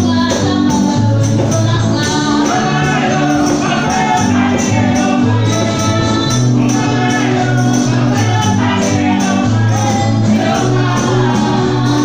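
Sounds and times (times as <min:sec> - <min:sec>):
people singing into microphones: 0:00.0 - 0:12.0
jingling percussion beat: 0:00.3 - 0:12.0.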